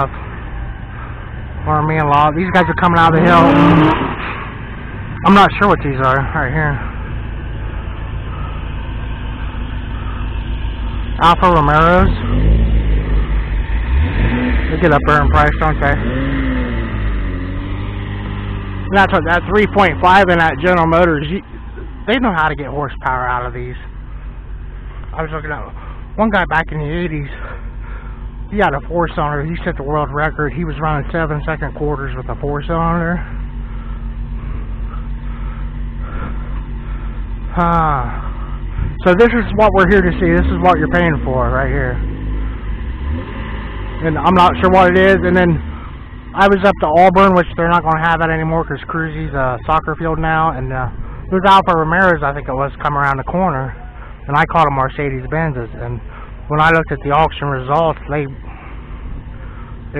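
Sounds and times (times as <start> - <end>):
car engine running: 0.0 - 59.9.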